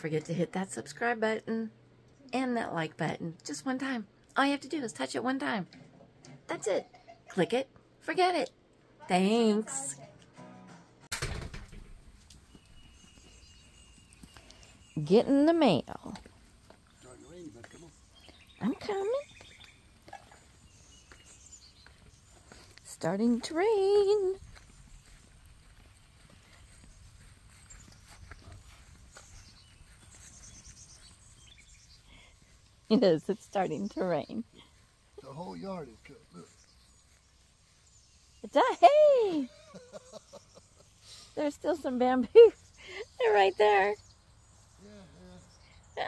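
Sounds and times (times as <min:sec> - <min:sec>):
soft footsteps on grass: 0:11.9 - 0:44.0.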